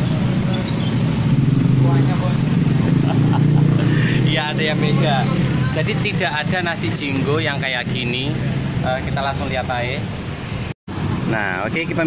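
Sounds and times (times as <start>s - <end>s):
motorbikes and cars passing: 0.0s - 12.0s.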